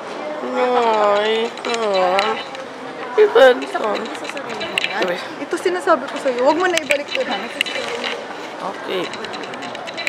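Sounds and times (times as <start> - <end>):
busy hall background noise: 0.0 - 10.0.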